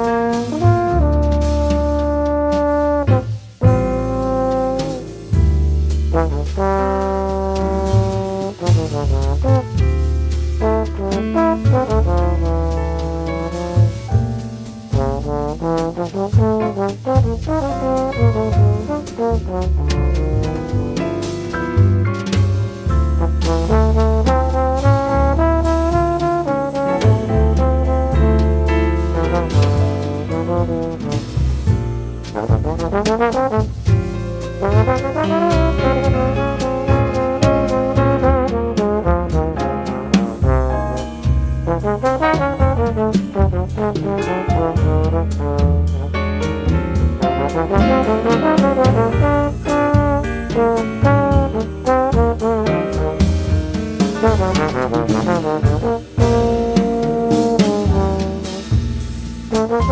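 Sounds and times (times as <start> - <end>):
bass line: 0.0 - 59.9
big band jazz with trombones: 0.0 - 59.9.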